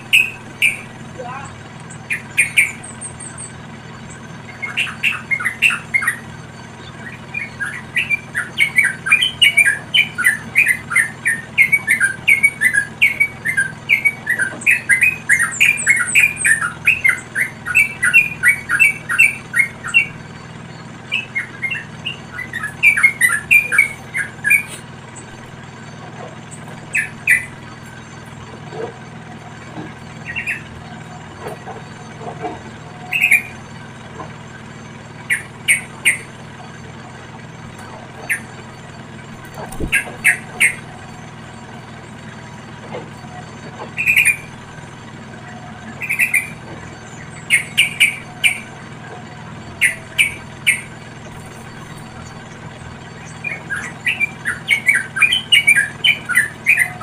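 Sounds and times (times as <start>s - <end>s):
bulbuls chirping: 0.0s - 57.0s.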